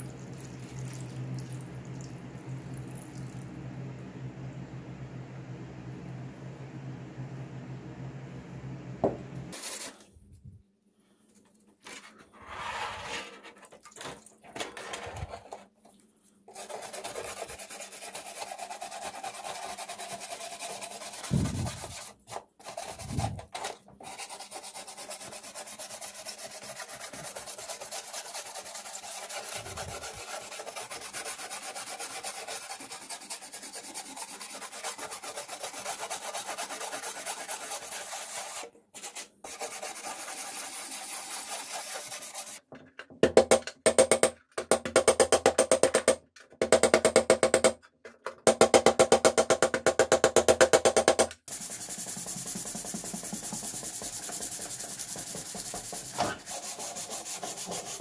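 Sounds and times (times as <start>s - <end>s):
metal scraper rasping paint: 16.5s - 42.6s, 51.5s - 58.0s
hammer strikes on sheet metal: 48.5s - 51.4s.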